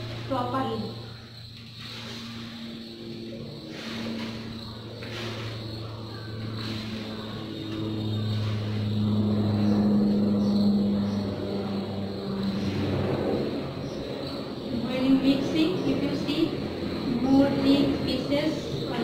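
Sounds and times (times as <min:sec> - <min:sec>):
passing vehicle engine hum: 0:00.0 - 0:19.0.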